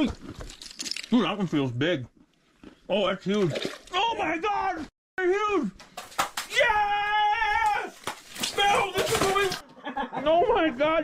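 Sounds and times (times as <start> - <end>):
sharp slaps: 5.8 - 6.6
men yelling and whooping: 6.5 - 9.6.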